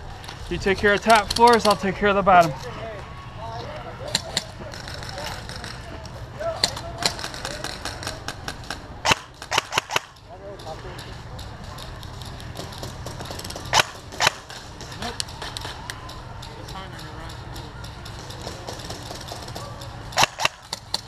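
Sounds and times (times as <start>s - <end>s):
airsoft gun shots: 9.0s - 10.2s, 13.7s - 14.6s, 20.2s - 21.0s.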